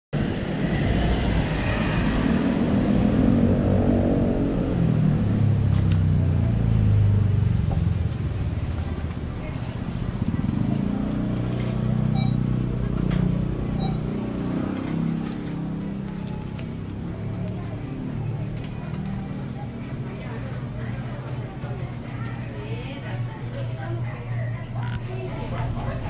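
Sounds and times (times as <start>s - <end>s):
motor vehicle passing: 0.2s - 23.9s
street traffic noise: 0.2s - 26.0s.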